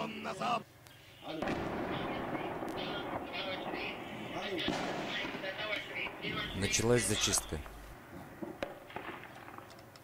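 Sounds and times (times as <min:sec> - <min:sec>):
voices: 0:00.0 - 0:08.1
heavy gunfire: 0:01.3 - 0:09.6.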